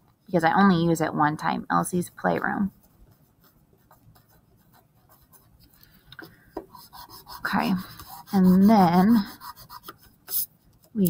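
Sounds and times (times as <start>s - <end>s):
pencil scratching on paper: 2.7s - 11.0s.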